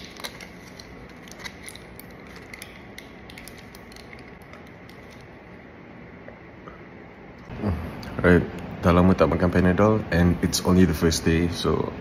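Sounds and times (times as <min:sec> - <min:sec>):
blister pack crackling and clicking: 0:00.0 - 0:05.3
room hum: 0:00.0 - 0:12.0.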